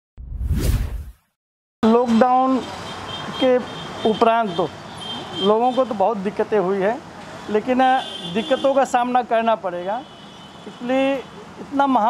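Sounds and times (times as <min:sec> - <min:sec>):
whoosh transition effect: 0:00.2 - 0:01.3.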